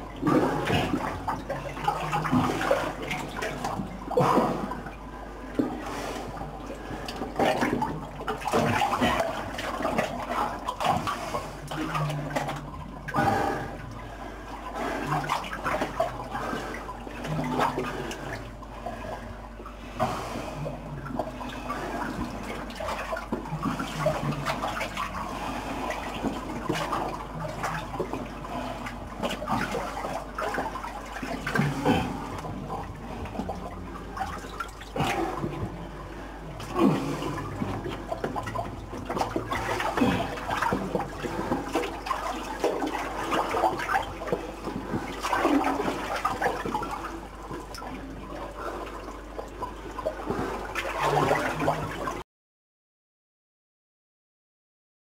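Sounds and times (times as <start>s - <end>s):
water sloshing from wading: 0.0s - 52.2s.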